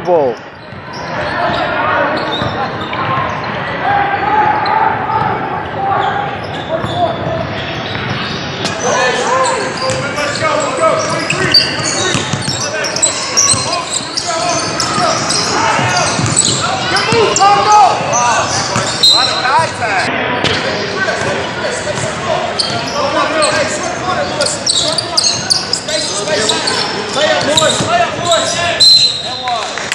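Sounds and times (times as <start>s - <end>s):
sneakers squeaking: 0.4s - 3.8s, 4.6s - 29.6s
basketball bouncing: 6.8s - 8.8s, 11.4s - 12.6s, 14.6s - 17.4s
people calling out: 8.7s - 20.1s.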